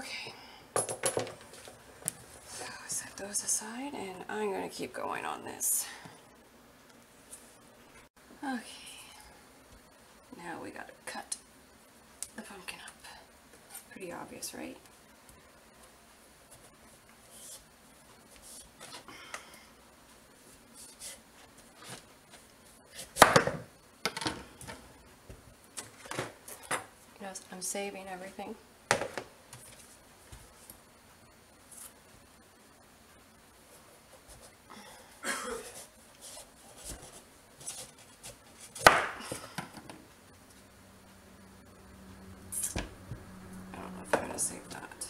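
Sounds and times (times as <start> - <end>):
knife chopping onto cutting board: 38.8 - 39.2.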